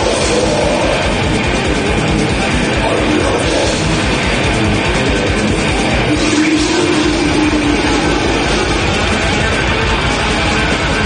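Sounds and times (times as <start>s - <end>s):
heavily distorted guitars: 0.0s - 11.0s.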